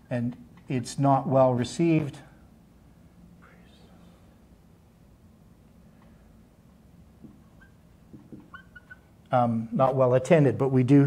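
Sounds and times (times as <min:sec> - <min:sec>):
marker squeaking on whiteboard: 0:07.2 - 0:09.2
marker tapping on whiteboard: 0:08.1 - 0:08.6.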